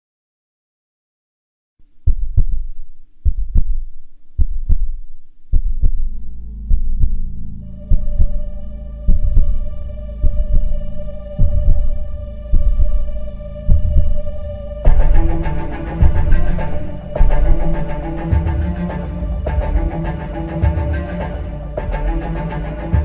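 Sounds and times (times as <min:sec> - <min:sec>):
heartbeat thumps: 0:02.0 - 0:18.9
low drone: 0:05.4 - 0:23.0
held synth chord: 0:07.3 - 0:23.0.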